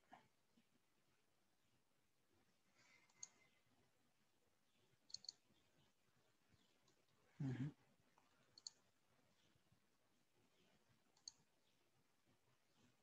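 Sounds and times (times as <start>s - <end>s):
faint computer mouse clicks: 3.0s - 3.4s, 5.1s - 5.4s, 8.4s - 8.8s, 11.1s - 11.5s.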